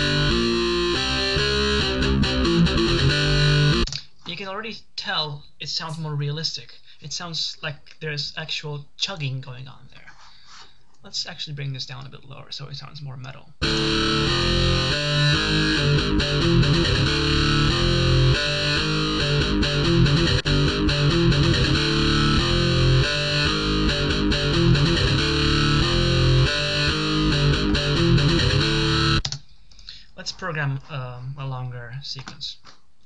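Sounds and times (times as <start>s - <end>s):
distorted electric guitar metal riff: 0.0s - 3.9s, 13.6s - 29.3s.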